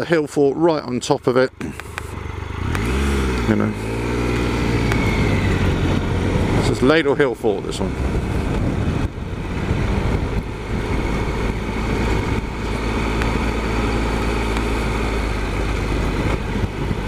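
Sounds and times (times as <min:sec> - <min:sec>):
motorcycle engine running at low speed: 0:00.0 - 0:17.0.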